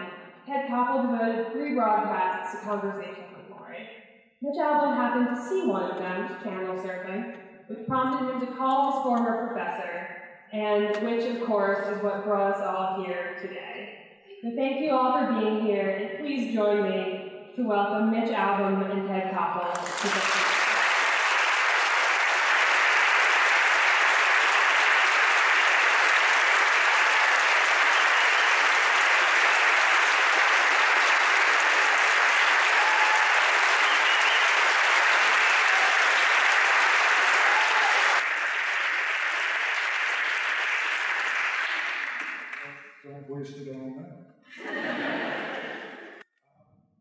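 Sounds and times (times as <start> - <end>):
audience applauding: 19.7 - 42.8.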